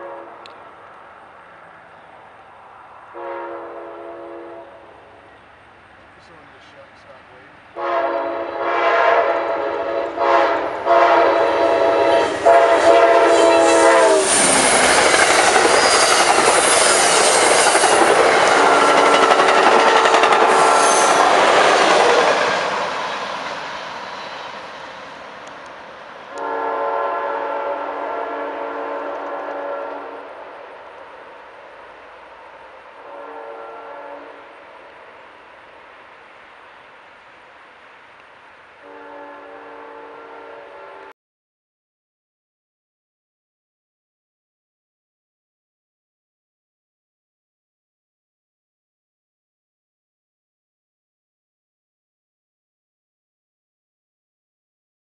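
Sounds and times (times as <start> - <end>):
train air horn blasts: 0.0 - 0.5, 3.1 - 5.0, 7.8 - 22.3, 26.3 - 30.4, 33.0 - 34.6, 38.8 - 41.1
train wheels rolling on rails: 9.9 - 26.7, 28.8 - 39.0.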